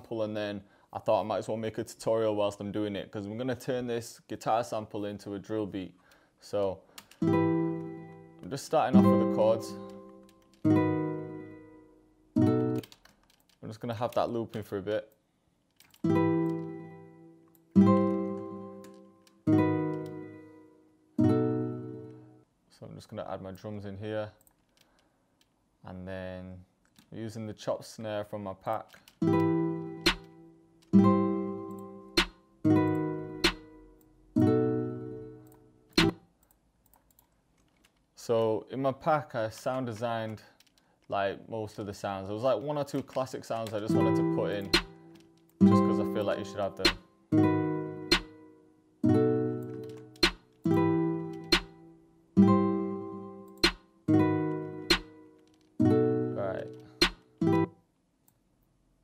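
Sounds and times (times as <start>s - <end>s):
nylon-string guitar chords: 7.2s - 12.8s, 16.0s - 22.4s, 29.2s - 35.4s, 43.8s - 57.8s
chopped snare sample: 30.0s - 30.3s, 32.2s - 32.4s, 33.4s - 33.7s, 36.0s - 36.2s, 44.6s - 45.0s, 46.8s - 47.0s, 48.1s - 48.4s, 50.2s - 50.5s, 51.4s - 51.8s, 53.6s - 53.8s, 54.9s - 55.2s, 57.0s - 57.3s.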